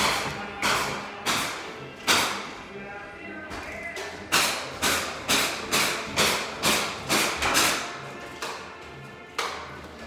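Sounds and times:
hammer blows echoing: 0:00.0 - 0:02.5, 0:04.0 - 0:08.6.

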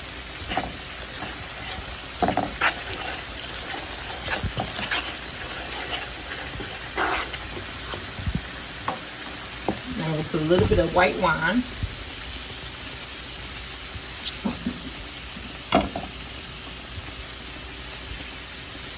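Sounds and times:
vegetables sizzling in a pan: 0:00.0 - 0:18.9
wooden spoon scraping a pan: 0:00.3 - 0:11.5.

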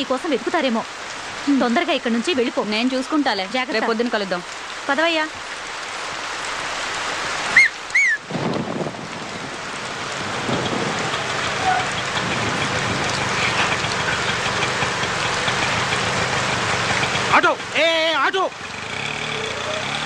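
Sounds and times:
heavy rain on street: 0:00.0 - 0:20.0
small engine approaching: 0:10.2 - 0:17.8, 0:18.4 - 0:20.0.

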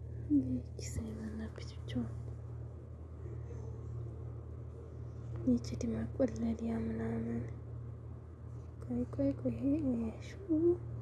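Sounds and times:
steady low hum: 0:00.0 - 0:11.0
person whispering: 0:00.3 - 0:02.2.

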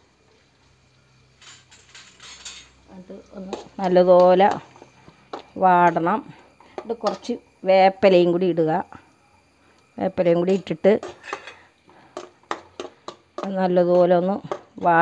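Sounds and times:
food sizzling in hot oil: 0:00.0 - 0:15.0.

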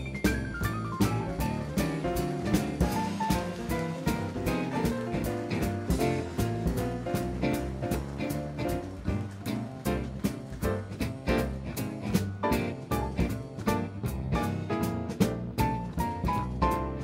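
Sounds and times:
drum kit beat: 0:00.0 - 0:17.0
jazz combo playing swing: 0:00.0 - 0:17.0.

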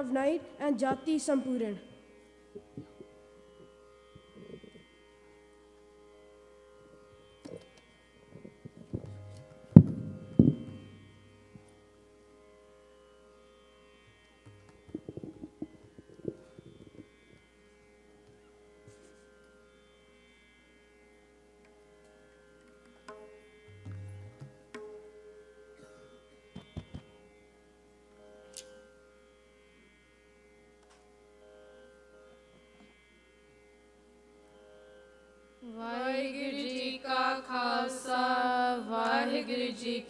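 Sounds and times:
instrumental drone: 0:08.2 - 0:12.2, 0:14.4 - 0:18.1, 0:23.7 - 0:24.8
tabla strikes: 0:08.4 - 0:11.7, 0:14.4 - 0:17.5, 0:22.8 - 0:25.8, 0:26.4 - 0:27.2
deep bass thumps: 0:09.8 - 0:10.9.

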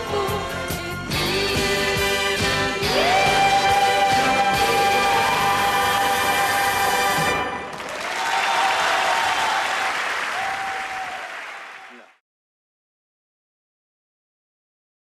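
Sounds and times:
audience applause: 0:07.5 - 0:12.2.

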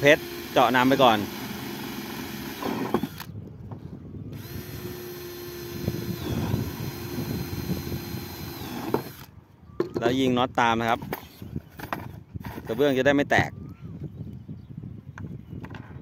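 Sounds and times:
cordless drill grinding into tile: 0:00.0 - 0:03.3, 0:04.3 - 0:09.3.

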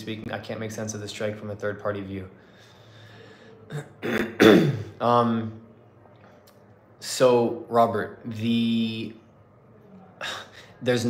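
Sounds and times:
man clearing his throat: 0:03.7 - 0:05.0.

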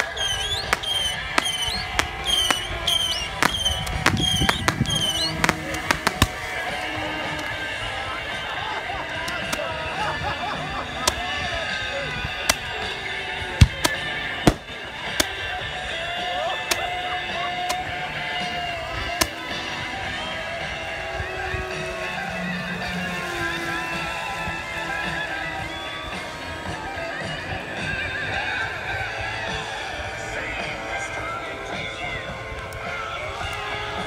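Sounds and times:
fireworks bangs and pops: 0:00.0 - 0:06.7, 0:13.6 - 0:15.3
music: 0:00.0 - 0:34.0.

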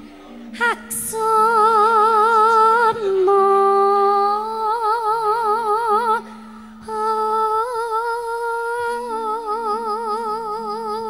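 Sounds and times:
low accompaniment notes: 0:00.0 - 0:11.0
woman singing into a microphone: 0:00.5 - 0:11.0.

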